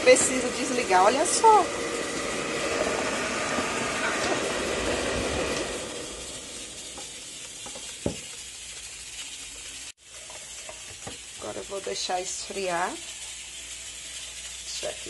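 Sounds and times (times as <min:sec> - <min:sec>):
air fryer fan whooshing: 0:00.0 - 0:15.0.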